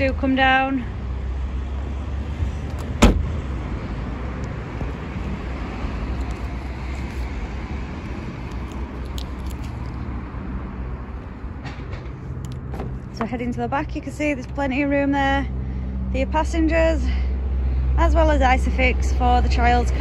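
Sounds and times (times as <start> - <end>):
car tailgate shutting thump: 2.7 - 3.4.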